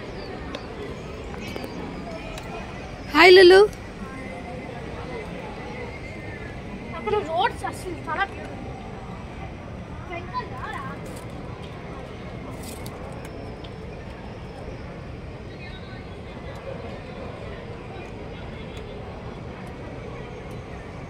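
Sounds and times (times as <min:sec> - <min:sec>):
faint distant voices: 0:00.0 - 0:21.0.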